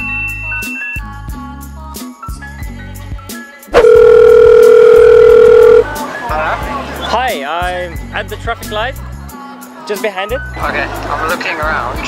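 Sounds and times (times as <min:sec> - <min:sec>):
steady telephone tone: 0:03.8 - 0:05.9.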